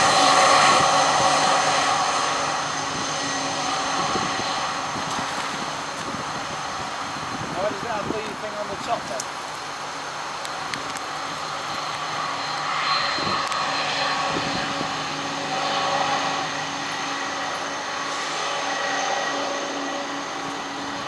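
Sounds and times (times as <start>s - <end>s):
jet engines whining: 0.0s - 21.0s.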